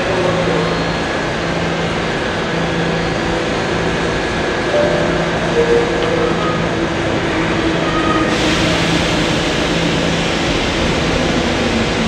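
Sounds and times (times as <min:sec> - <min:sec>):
subway train humming: 0:00.0 - 0:12.0.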